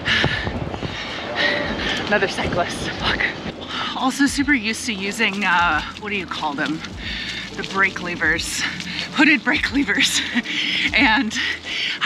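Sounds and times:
wind on microphone: 0.0s - 11.7s
bicycle tyres rolling on pavement: 0.0s - 12.0s.

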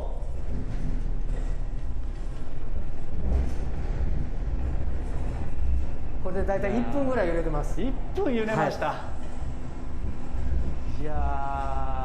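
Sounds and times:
deep rumble: 0.0s - 12.0s
platform rattling: 0.0s - 12.0s.

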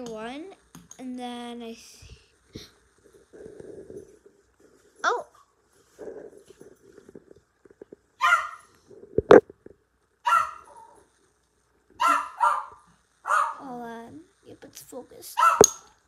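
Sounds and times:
dog barking: 8.2s - 8.7s, 10.2s - 11.0s, 12.0s - 13.6s, 15.4s - 15.9s.

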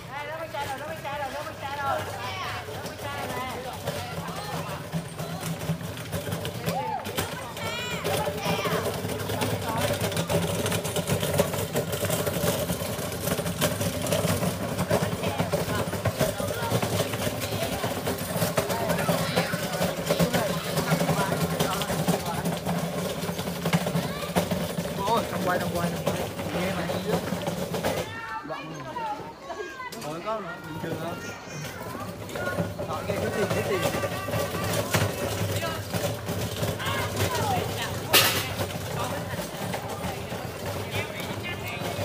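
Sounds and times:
small motorbike engine running: 0.0s - 28.2s, 30.1s - 42.0s
children talking and calling out: 0.0s - 42.0s.

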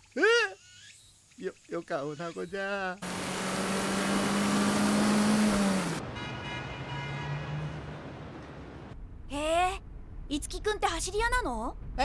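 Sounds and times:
car engine driving at steady revs: 3.0s - 6.0s
road and wind noise: 3.0s - 12.0s.

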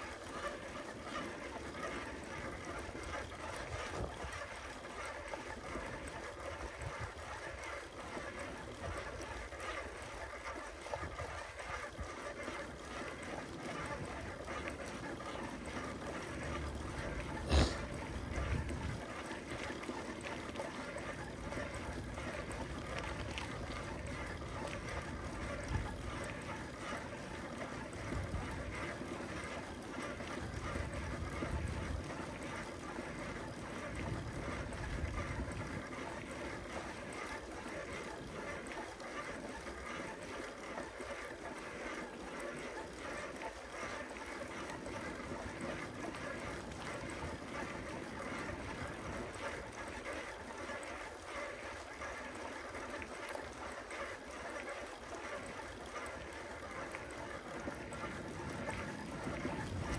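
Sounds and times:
bicycle tyres rolling on pavement: 0.0s - 59.9s.

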